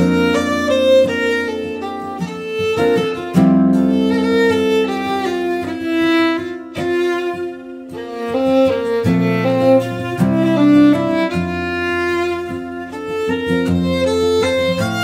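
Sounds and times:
fiddle melody: 0:00.0 - 0:15.0
strummed acoustic guitar: 0:00.0 - 0:15.0.

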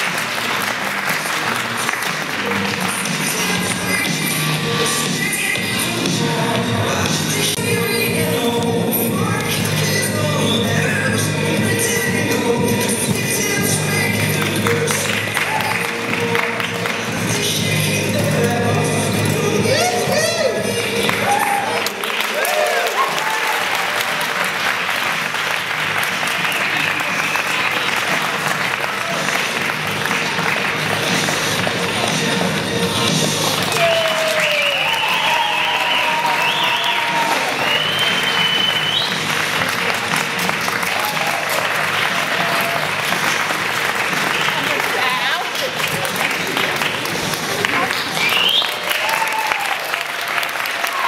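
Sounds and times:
audience applauding: 0:00.0 - 0:05.5, 0:14.3 - 0:17.4, 0:19.7 - 0:51.0
music playing: 0:00.0 - 0:51.0
cheers and whoops: 0:21.1 - 0:24.4, 0:33.7 - 0:39.1, 0:40.8 - 0:43.0, 0:48.2 - 0:51.0.

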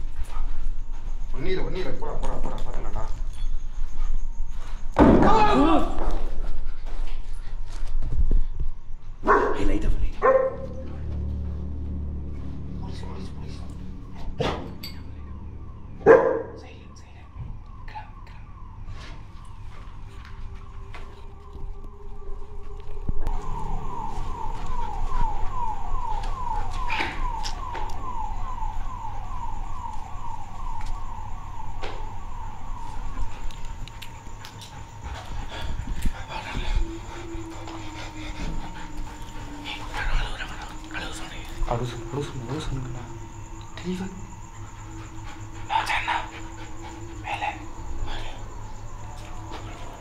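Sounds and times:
dog panting: 0:00.0 - 0:04.3, 0:33.0 - 0:50.0
dog barking: 0:09.2 - 0:10.8, 0:16.0 - 0:16.6
faint steady tone: 0:10.6 - 0:50.0.

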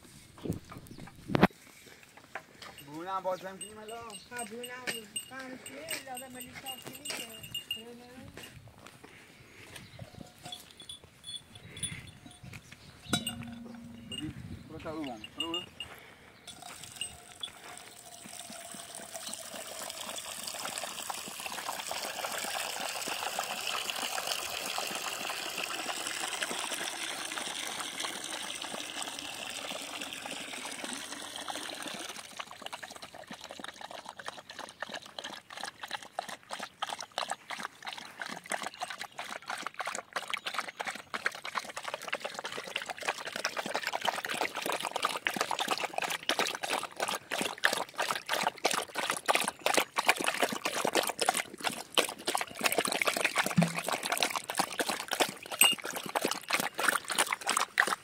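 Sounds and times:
water pouring into metal bowl: 0:16.5 - 0:34.4, 0:42.1 - 0:58.0
dog lapping water: 0:16.5 - 0:58.0.

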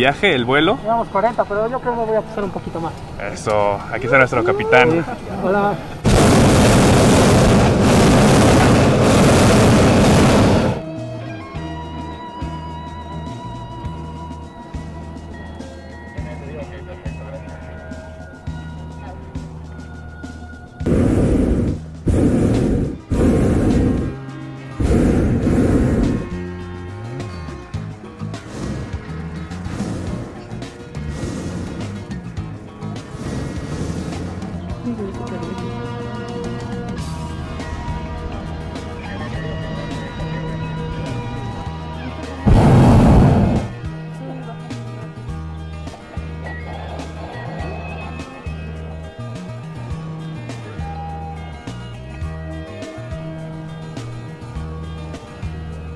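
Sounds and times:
background music: 0:00.0 - 0:55.9
propane burner blasts: 0:03.0 - 0:10.9, 0:20.8 - 0:34.9, 0:35.8 - 0:44.1.

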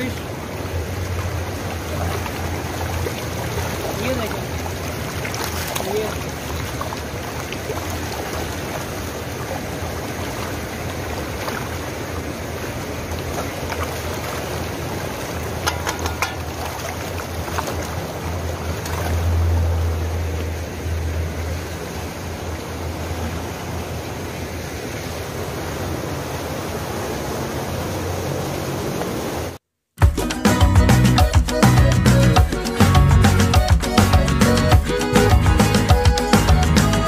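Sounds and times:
water rushing and splashing: 0:00.0 - 0:37.0.

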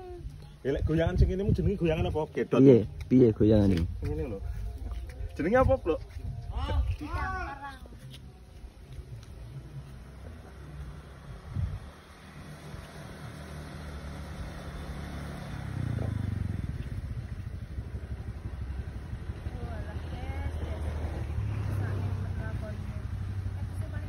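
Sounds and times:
motor scooter engine: 0:09.9 - 0:24.0.

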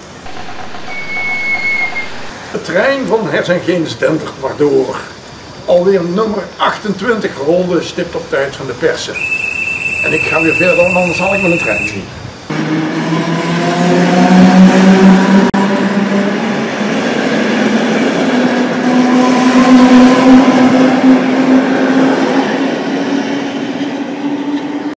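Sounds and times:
train droning hum: 0:00.0 - 0:03.4, 0:09.2 - 0:24.9.

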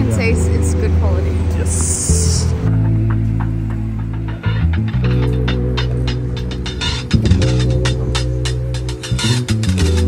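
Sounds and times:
low bass notes: 0:00.0 - 0:10.0.

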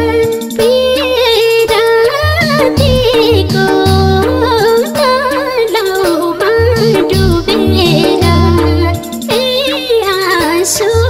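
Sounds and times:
high singing voice: 0:00.0 - 0:11.0
instrumental backing with bass: 0:00.0 - 0:11.0.

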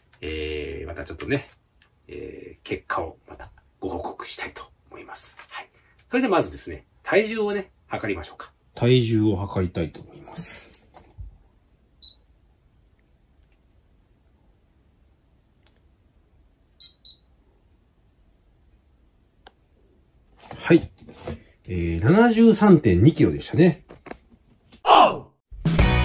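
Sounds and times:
bathroom scale beep: 0:12.0 - 0:12.2, 0:16.8 - 0:17.3
background music with strummed guitar: 0:25.6 - 0:26.0.

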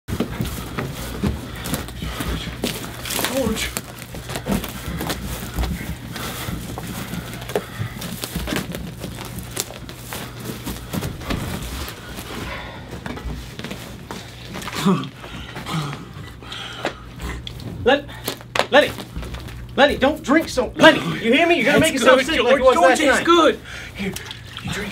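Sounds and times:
breathing and mouth noises: 0:00.1 - 0:18.5
steady low hum: 0:00.1 - 0:24.9.

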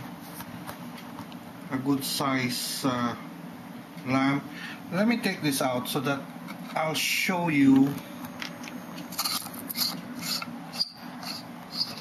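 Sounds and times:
test leads scraping on wooden table: 0:09.1 - 0:12.0.

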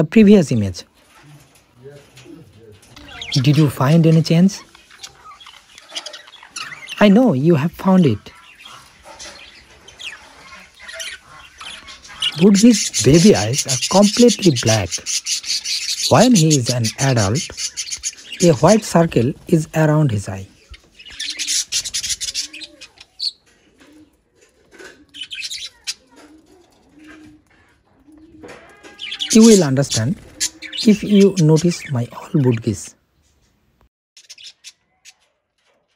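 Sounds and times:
budgerigars chirping: 0:02.8 - 0:23.4, 0:25.1 - 0:26.0, 0:29.0 - 0:32.9, 0:34.2 - 0:35.2.

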